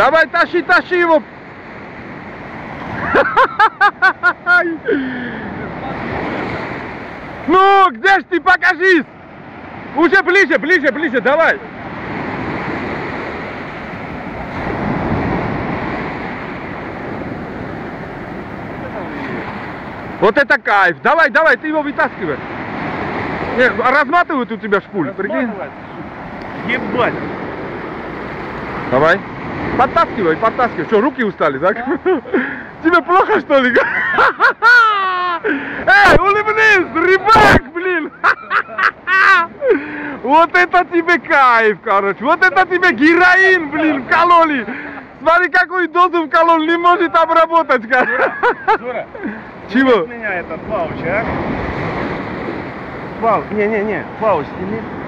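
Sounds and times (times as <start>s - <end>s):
sea surf breaking on sand: 0.0s - 55.0s
man laughing: 2.9s - 6.0s, 31.7s - 36.1s, 37.6s - 40.2s, 47.8s - 49.6s.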